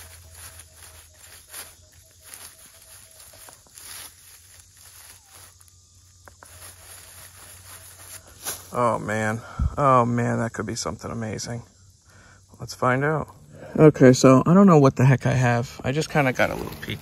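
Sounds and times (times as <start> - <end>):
coil swishing through dry leaves: 0.0 - 8.8.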